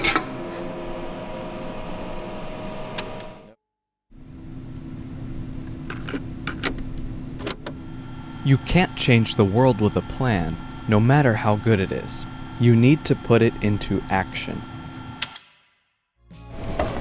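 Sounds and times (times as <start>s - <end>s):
steady hum: 4.2s - 15.4s.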